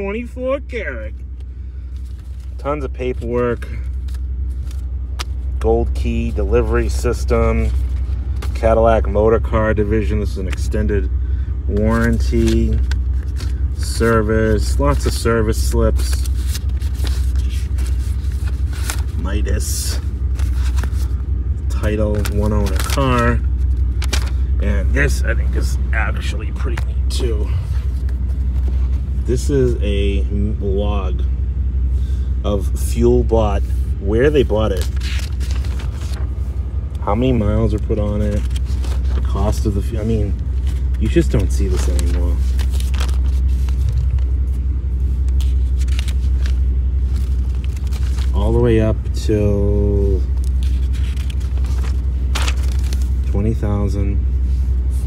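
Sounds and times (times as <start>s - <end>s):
car engine idling: 0.0s - 55.0s
papers rustling: 1.3s - 9.2s, 11.7s - 29.3s, 33.7s - 48.8s, 50.2s - 53.3s.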